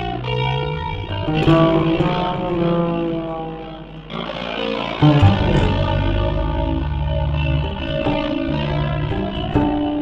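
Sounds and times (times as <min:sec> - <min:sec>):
electric guitar chord: 0:00.0 - 0:10.0.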